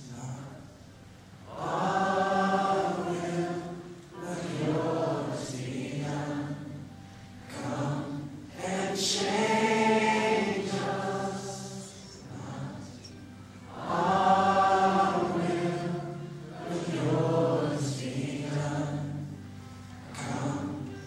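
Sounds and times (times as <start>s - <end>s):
choir singing long held notes: 1.4s - 21.0s.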